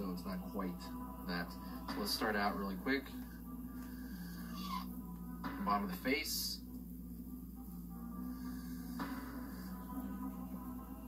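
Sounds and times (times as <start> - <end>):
soft background music from speakers: 0.0 - 11.0.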